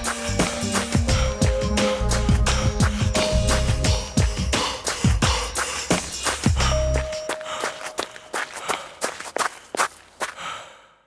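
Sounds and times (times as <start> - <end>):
rhythmic sharp taps: 0.0 - 10.0.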